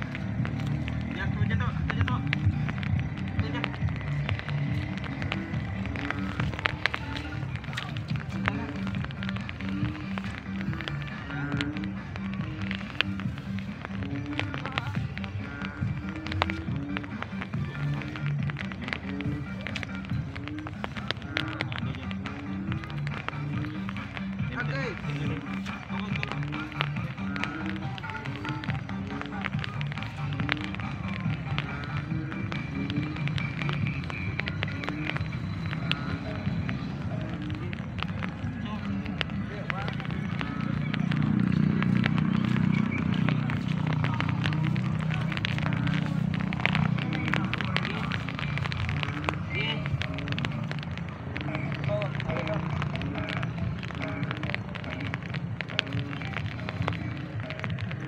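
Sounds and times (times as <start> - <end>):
music with steady beat and bassline: 0.0 - 58.0.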